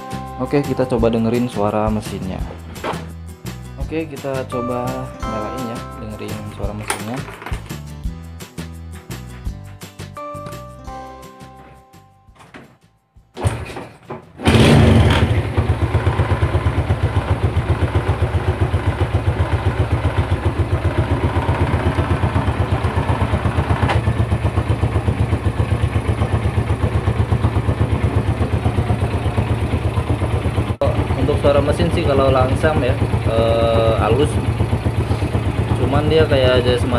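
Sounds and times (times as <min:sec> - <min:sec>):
engine rattle: 0:13.4 - 0:36.9
motorcycle engine idling: 0:14.4 - 0:36.9.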